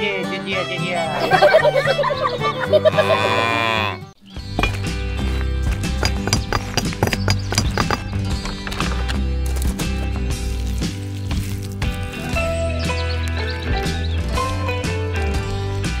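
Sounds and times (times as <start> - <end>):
background music: 0.0 - 16.0
music with steady beat and heavy bass: 4.4 - 16.0.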